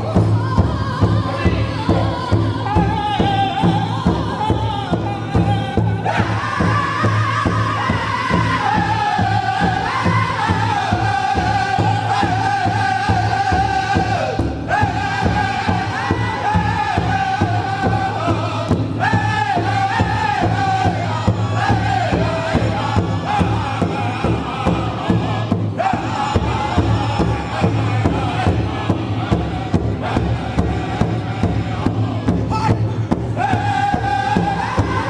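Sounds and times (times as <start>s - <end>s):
steady drumbeat: 0.0s - 35.0s
voices singing a chant: 0.0s - 35.0s.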